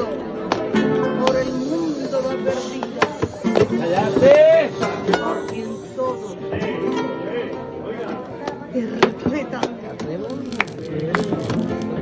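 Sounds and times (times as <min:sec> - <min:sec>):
background voices: 0:00.0 - 0:09.0.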